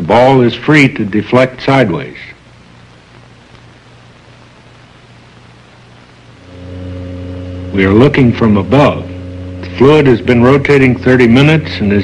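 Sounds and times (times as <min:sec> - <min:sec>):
faint hiss: 0:00.0 - 0:12.0
low electric hum: 0:00.0 - 0:12.0.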